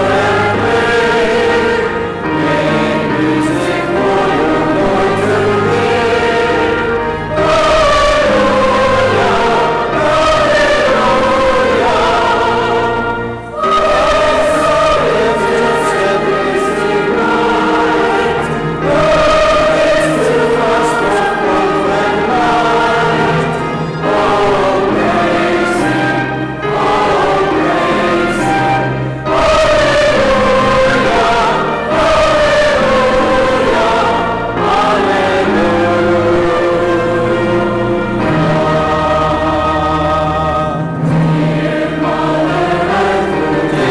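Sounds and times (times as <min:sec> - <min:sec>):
choir singing: 0:00.0 - 0:43.9.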